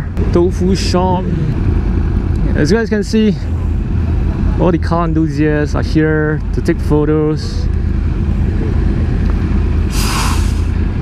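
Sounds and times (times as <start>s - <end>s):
loud hiss: 9.9s - 10.8s.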